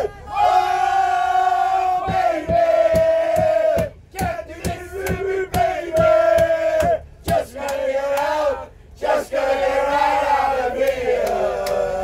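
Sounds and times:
group of people singing: 0.3 - 12.0
hand claps: 10.8 - 11.8.

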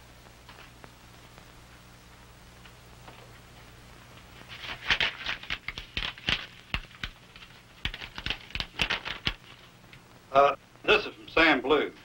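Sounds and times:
paper crackling and rustling: 4.2 - 9.8.

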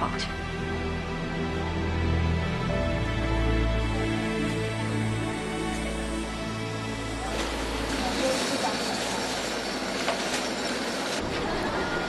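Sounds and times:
rainy street noise: 3.8 - 12.0.

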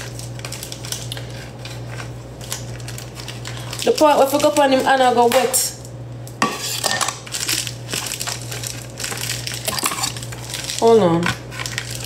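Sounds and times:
steady low hum: 0.0 - 12.0
kitchenware clinking: 6.4 - 7.2, 9.6 - 10.2.

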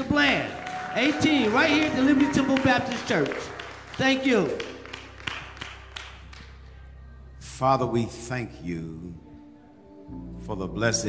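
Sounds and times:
scattered claps: 0.5 - 6.6.

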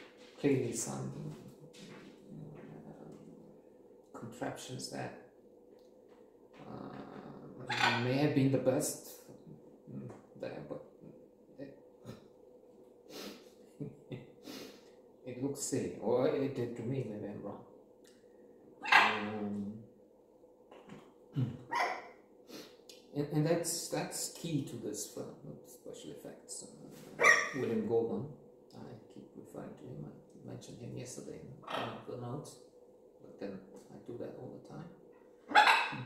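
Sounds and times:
bark-like animal call: 18.8 - 19.2, 27.2 - 27.6, 35.5 - 36.0.

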